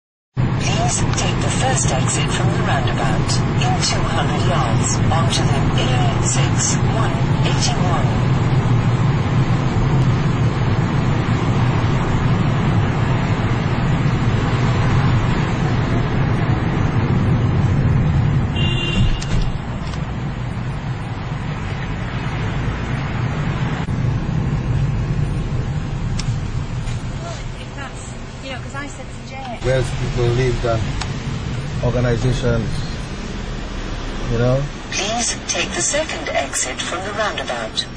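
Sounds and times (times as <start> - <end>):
car interior engine and tyre noise: 0.4 - 37.9.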